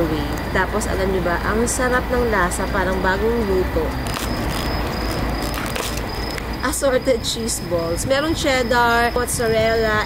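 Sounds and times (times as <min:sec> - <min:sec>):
high insect trill: 0:00.0 - 0:10.0.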